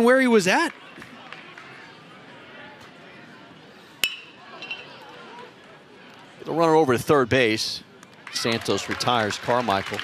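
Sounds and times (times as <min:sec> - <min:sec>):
stadium background noise: 0:00.0 - 0:10.0.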